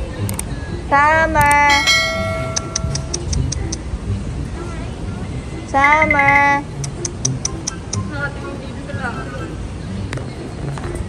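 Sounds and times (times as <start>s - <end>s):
light high-pitched ticks: 0.2s - 0.5s, 2.5s - 3.9s, 6.0s - 8.1s.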